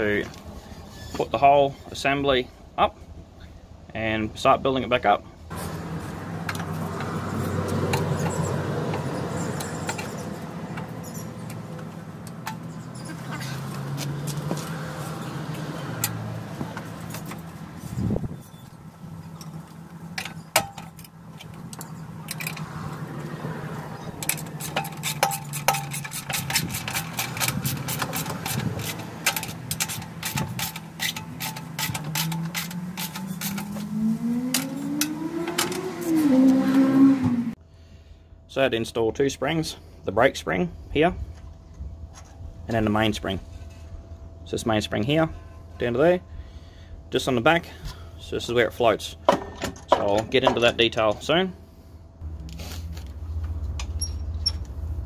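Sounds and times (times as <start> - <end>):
low mechanical drone: 5.4 - 49.3
metal tools clicking and clinking: 7.9 - 13.8, 19.3 - 22.7, 24.1 - 33.8.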